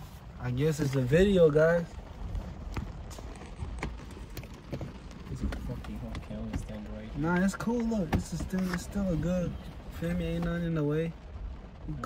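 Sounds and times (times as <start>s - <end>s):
faint low talk in a car: 0.2s - 3.3s, 4.0s - 12.0s.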